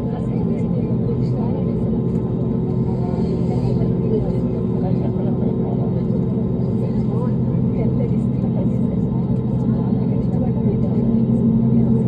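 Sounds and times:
faint passenger chatter: 0:00.0 - 0:12.0
jet engines droning: 0:00.0 - 0:12.0.

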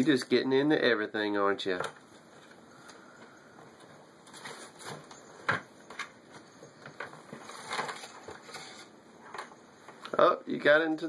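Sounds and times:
paper and tissue rustling: 0:04.2 - 0:05.3, 0:07.1 - 0:09.0.

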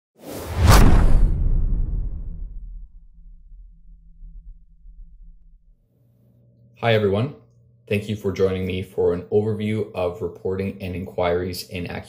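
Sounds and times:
whoosh into sharp hit: 0:00.2 - 0:05.7
deep low rumble: 0:00.6 - 0:05.8.

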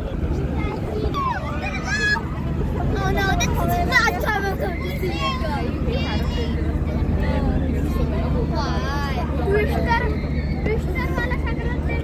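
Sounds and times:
low engine rumble: 0:00.0 - 0:12.0
people chattering: 0:00.0 - 0:12.0.

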